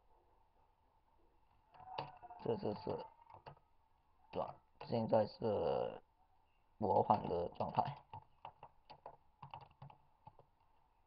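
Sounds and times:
faint keyboard keystrokes: 1.8 - 3.6, 7.0 - 10.5.

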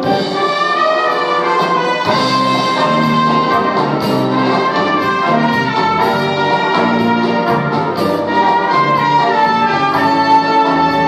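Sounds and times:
brass band playing: 0.0 - 11.0.

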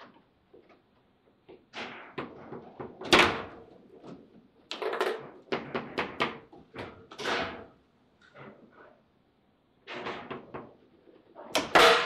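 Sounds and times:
table football clacks: 1.5 - 7.6.

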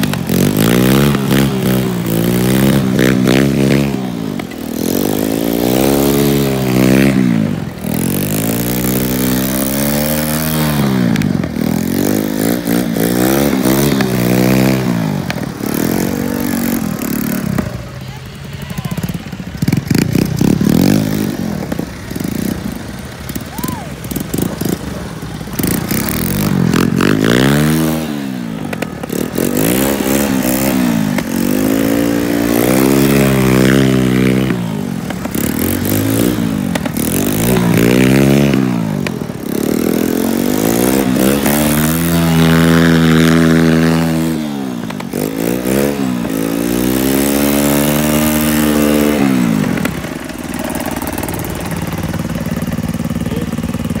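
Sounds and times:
engines revving: 0.0 - 54.0.

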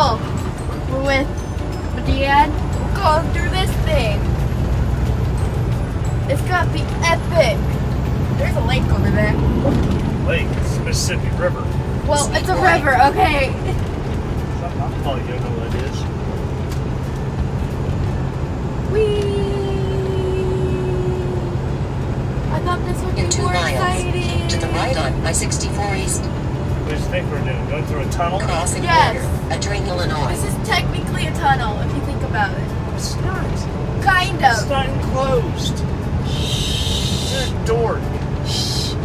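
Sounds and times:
road noise: 0.0 - 39.0
truck engine drone: 0.0 - 39.0
indistinct voices: 6.1 - 13.8, 18.9 - 39.0.

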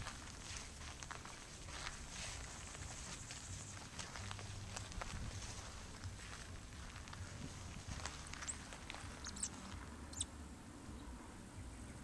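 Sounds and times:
steady low rumble: 0.0 - 11.8
bird chirping: 8.0 - 10.3.

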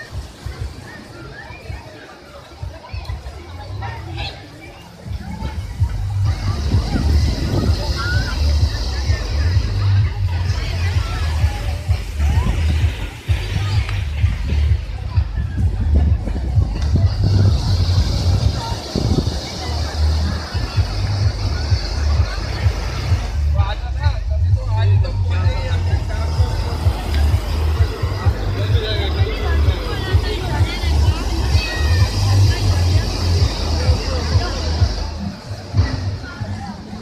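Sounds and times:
surf on a beach: 0.0 - 24.1, 25.4 - 37.0
faint crowd voices: 0.0 - 37.0
wind buffeting microphone: 2.6 - 23.4, 24.0 - 37.0
breaking surf: 25.5 - 37.0.

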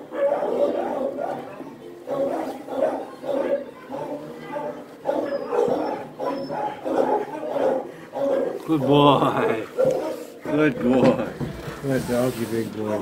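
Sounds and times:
dog grumbling: 5.7 - 11.5.

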